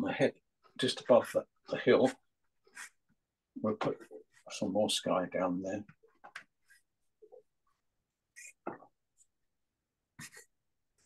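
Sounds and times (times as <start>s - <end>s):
pastel scratching on paper: 2.1s - 3.1s, 8.3s - 8.6s, 10.2s - 11.0s.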